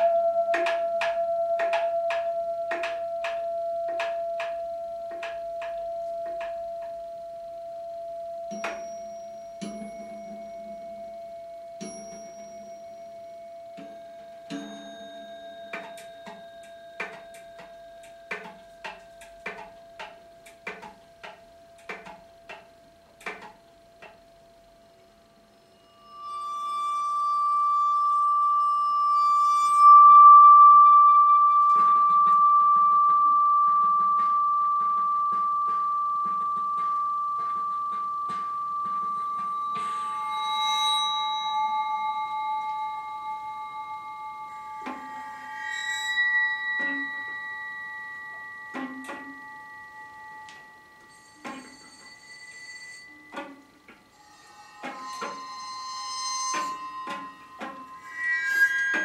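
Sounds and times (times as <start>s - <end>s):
long ringing metallic tones: 0.0s - 22.6s, 24.3s - 59.0s
sharp percussion strikes: 0.0s - 59.0s
held flute notes: 26.0s - 52.3s.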